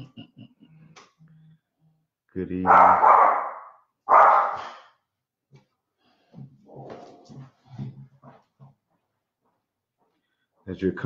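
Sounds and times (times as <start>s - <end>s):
dog barking: 2.6s - 4.9s.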